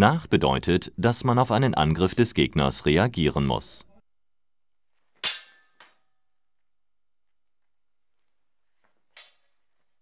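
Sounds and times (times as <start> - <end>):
sword blades clashing: 5.2 - 5.9.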